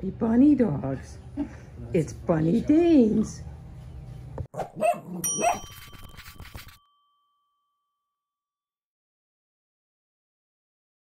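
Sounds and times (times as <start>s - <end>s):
dog barks: 4.5s - 5.7s
bright bell ding: 5.2s - 8.3s.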